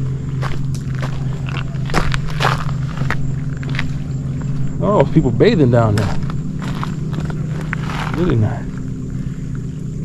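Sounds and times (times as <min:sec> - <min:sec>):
steady low hum: 0:00.0 - 0:10.0
footsteps scuffing on rock: 0:00.4 - 0:04.8, 0:06.0 - 0:08.4.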